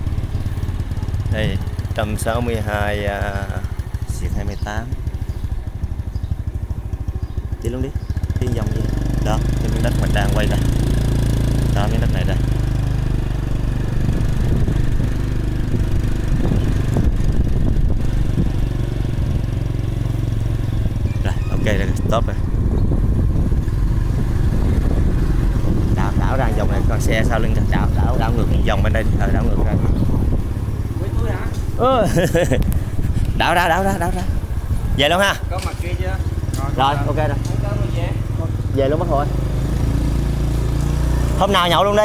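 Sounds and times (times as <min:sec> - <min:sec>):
motorbike engine rumbling: 0:00.0 - 0:42.0
wind on microphone: 0:12.8 - 0:19.7, 0:20.3 - 0:35.6.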